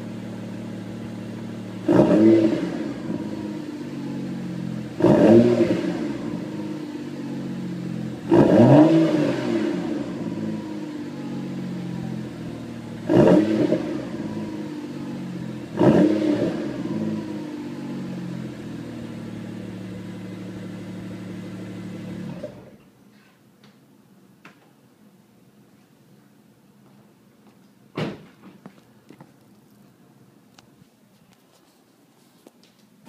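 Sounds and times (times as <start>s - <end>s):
car engine idling and revving: 0.0s - 22.9s.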